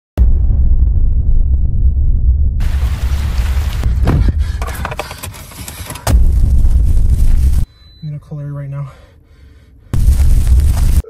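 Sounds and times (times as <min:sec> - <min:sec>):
deep rumble: 0:00.2 - 0:05.2, 0:06.1 - 0:07.7, 0:10.0 - 0:11.0
clicks and crackling: 0:03.0 - 0:06.8.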